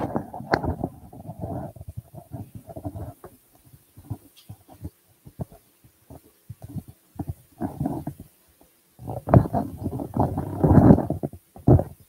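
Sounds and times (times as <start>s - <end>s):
microphone handling bumps and rustles: 0.0s - 8.4s, 9.0s - 12.0s.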